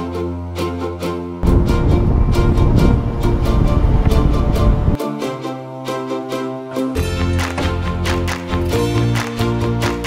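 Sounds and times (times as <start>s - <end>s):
background music with steady beat: 0.0s - 10.0s
road and engine noise in van: 1.4s - 5.0s.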